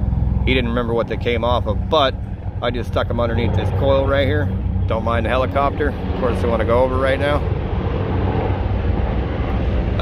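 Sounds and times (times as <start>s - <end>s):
helicopter rotor: 0.0s - 10.0s.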